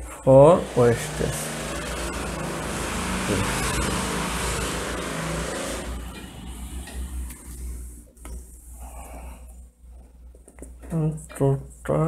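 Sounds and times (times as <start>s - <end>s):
motor vehicle running: 0.4s - 7.9s.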